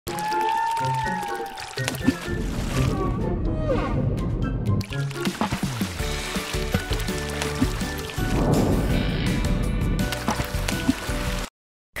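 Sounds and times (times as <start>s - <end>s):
water splash: 0.1s - 3.0s, 4.8s - 9.0s, 10.0s - 11.5s
cartoon music: 0.1s - 5.3s.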